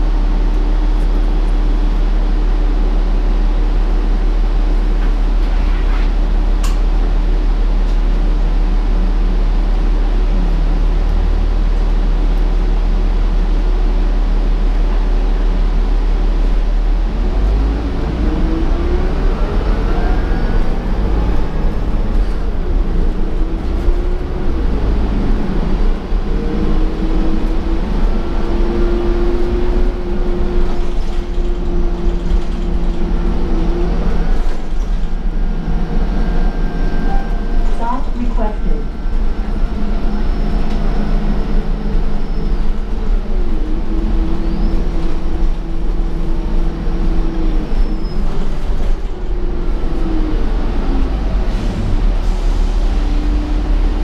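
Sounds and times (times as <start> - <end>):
bus engine and road rumble: 0.0 - 54.0.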